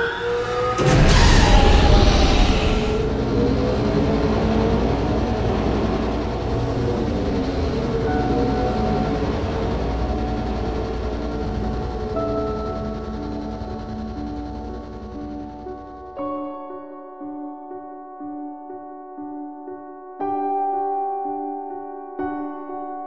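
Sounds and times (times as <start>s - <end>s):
rumbling engine roar: 0.0s - 16.2s
sustained music notes: 0.0s - 16.3s.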